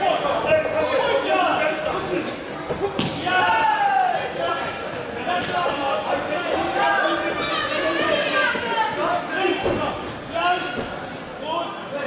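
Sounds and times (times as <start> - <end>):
people shouting in echoing hall: 2.7 - 4.8.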